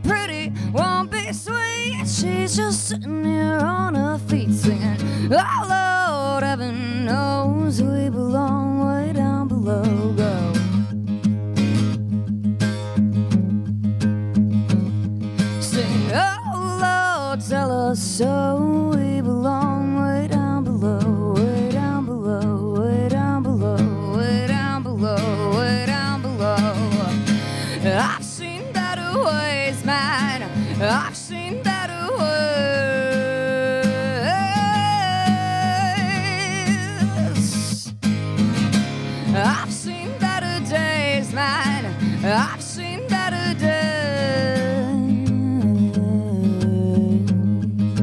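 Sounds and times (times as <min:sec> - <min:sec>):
person singing: 0:00.0 - 0:10.8, 0:15.5 - 0:37.9, 0:39.3 - 0:47.7
acoustic guitar strumming: 0:00.0 - 0:48.0.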